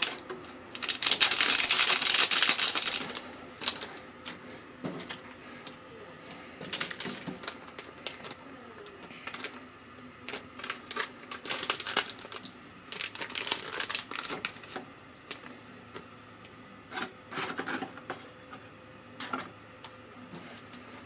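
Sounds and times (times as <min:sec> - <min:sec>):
plastic packet crinkling: 0:00.0 - 0:04.0, 0:06.6 - 0:09.6, 0:10.2 - 0:15.5.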